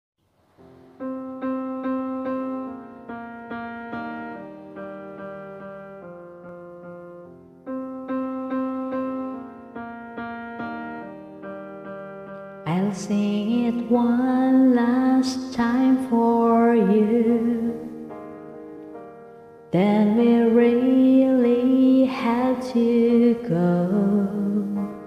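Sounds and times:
slow piano chords: 0:00.2 - 0:25.0.

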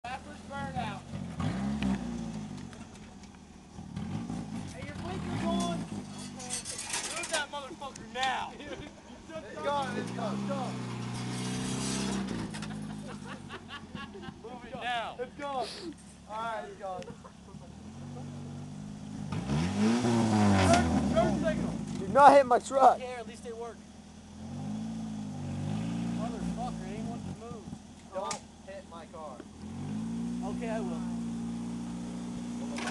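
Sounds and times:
car engine idling: 0:00.0 - 0:19.6, 0:20.3 - 0:32.9
people talking and laughing: 0:06.4 - 0:10.8, 0:12.3 - 0:18.8.

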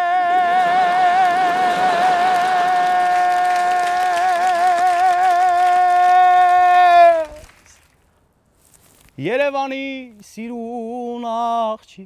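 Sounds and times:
man singing high note: 0:00.0 - 0:07.4.

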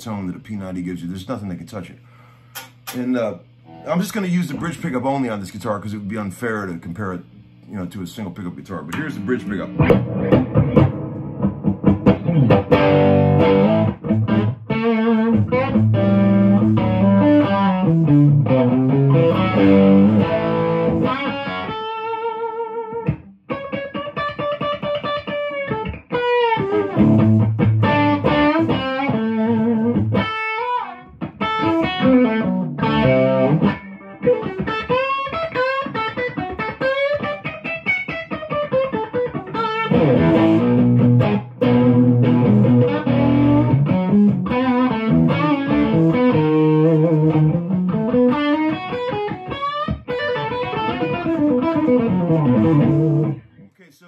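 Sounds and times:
electric guitar through amplifier: 0:01.4 - 0:53.8.

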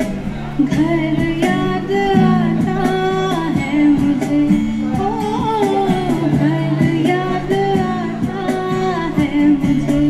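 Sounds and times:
acoustic guitar: 0:00.0 - 0:10.0
cajon beat: 0:00.0 - 0:10.0
woman singing: 0:00.6 - 0:10.0.

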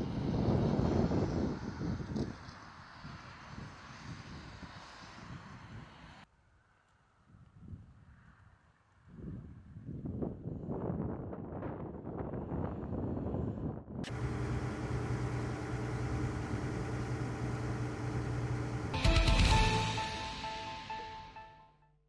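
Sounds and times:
motor humming steadily: 0:14.1 - 0:19.0.

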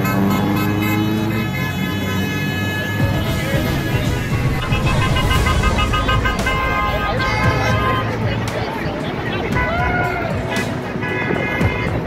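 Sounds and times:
car horns honking: 0:00.0 - 0:08.2
freeway traffic rumbling: 0:00.0 - 0:12.0.

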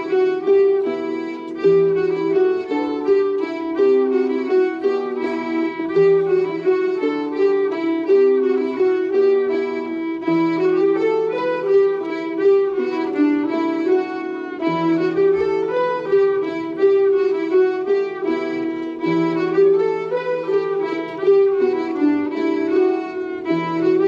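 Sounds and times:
button accordion: 0:00.0 - 0:24.0
fiddle: 0:00.0 - 0:24.0
harps: 0:00.0 - 0:24.0.

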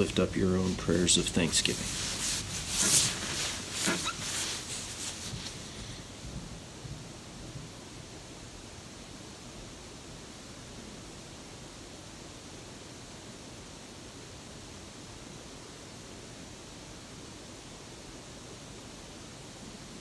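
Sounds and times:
rustling and rubbing: 0:00.0 - 0:06.4
faint hiss: 0:00.0 - 0:20.0.

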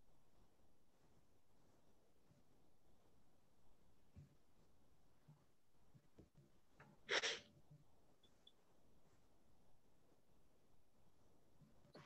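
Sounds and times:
faint breath intake: 0:07.1 - 0:07.4
person exhaling sharply: 0:07.1 - 0:07.4.

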